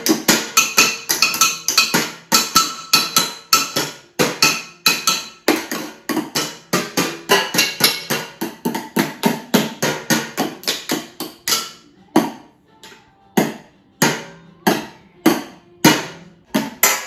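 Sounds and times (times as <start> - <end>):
sticks drumming on bowls and tins: 0.0 - 17.0.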